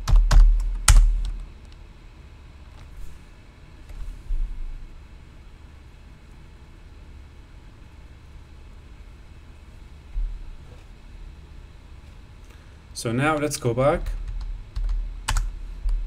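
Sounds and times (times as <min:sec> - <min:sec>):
steady low hum: 0:00.0 - 0:16.0
dull low thumps: 0:10.1 - 0:10.6.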